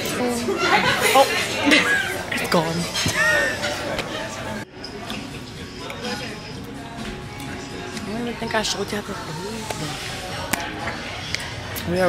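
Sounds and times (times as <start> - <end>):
murmur of voices: 0.0 - 12.0
restaurant dining noise: 0.0 - 12.0.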